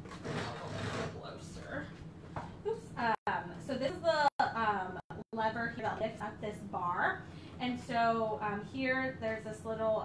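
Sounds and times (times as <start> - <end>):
hands scraping plastic mat: 0.0 - 1.2.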